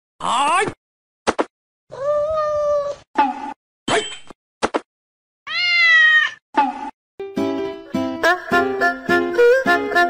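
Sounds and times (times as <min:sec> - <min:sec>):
cat meowing: 0:01.9 - 0:03.0, 0:05.5 - 0:06.4.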